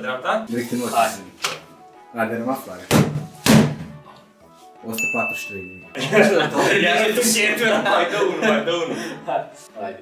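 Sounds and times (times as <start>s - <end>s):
punches thudding into strike shield: 2.9s - 3.9s.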